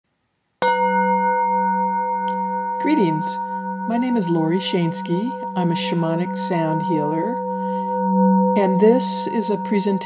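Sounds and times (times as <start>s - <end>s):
singing bowl ringing: 0.6s - 10.0s.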